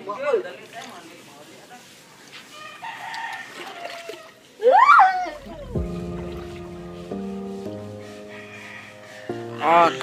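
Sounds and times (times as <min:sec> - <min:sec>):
rooster crowing: 0:02.5 - 0:04.4, 0:08.2 - 0:09.6.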